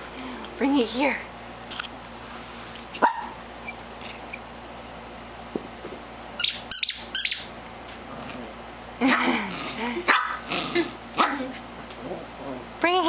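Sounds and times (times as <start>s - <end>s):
small dog barking: 3.0s - 3.4s, 10.1s - 10.5s, 11.2s - 11.5s.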